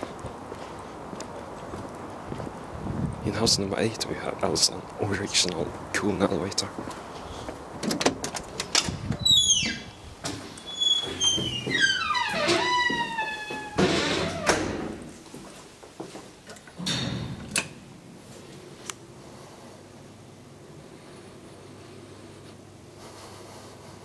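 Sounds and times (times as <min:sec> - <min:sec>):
door hinges squeaking: 0:08.7 - 0:15.0.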